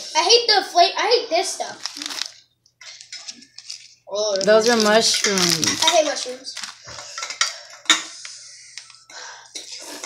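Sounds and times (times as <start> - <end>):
utensils clinking and scraping bowls: 1.9 - 10.0.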